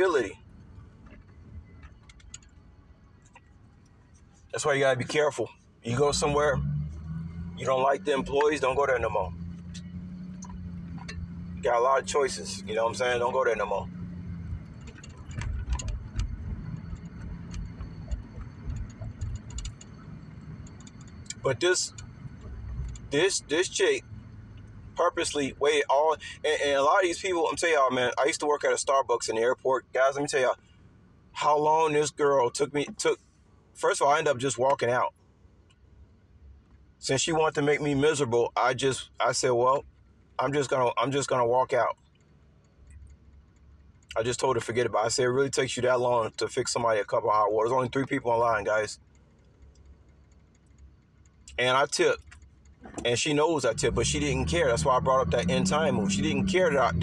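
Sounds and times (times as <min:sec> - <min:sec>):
car cabin rumble: 0:00.0 - 0:30.6, 0:37.2 - 0:57.0
light clicks and ticks: 0:01.0 - 0:05.2, 0:14.3 - 0:23.3, 0:41.3 - 0:44.8, 0:48.0 - 0:55.5
tiny ticks: 0:20.6 - 0:23.1.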